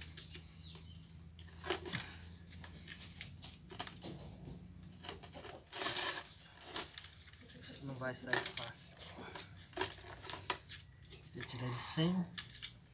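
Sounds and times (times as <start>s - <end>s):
scrapes cracks and crinkles: 0.0s - 12.9s
bucket tearing from concrete: 5.0s - 7.6s.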